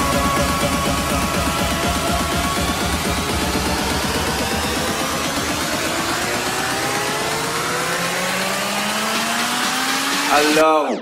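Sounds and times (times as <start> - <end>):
electronic music: 0.0 - 11.0.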